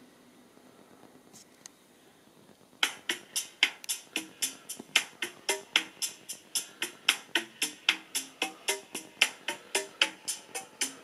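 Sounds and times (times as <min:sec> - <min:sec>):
faint steady hiss: 0:00.0 - 0:11.0
song beat of clicks: 0:02.8 - 0:11.0.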